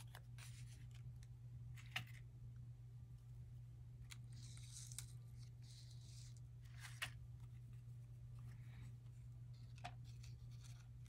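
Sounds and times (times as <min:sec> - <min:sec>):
soft paper rustles: 0:00.0 - 0:02.3, 0:04.0 - 0:11.0
steady low hum: 0:00.0 - 0:11.0.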